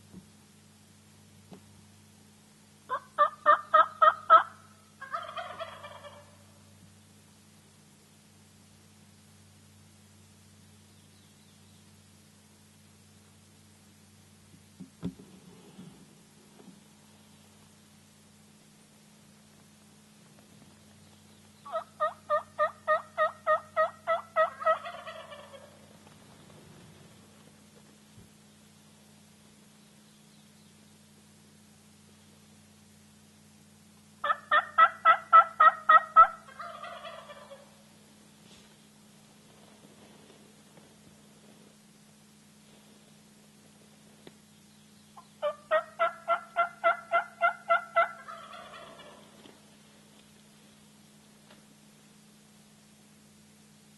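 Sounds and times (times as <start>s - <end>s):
turkey yelping: 2.9s - 6.4s, 21.7s - 25.9s, 34.2s - 37.8s, 45.2s - 49.4s.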